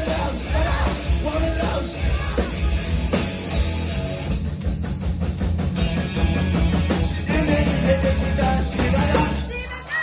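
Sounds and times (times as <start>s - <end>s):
electric guitar: 0.0s - 10.0s.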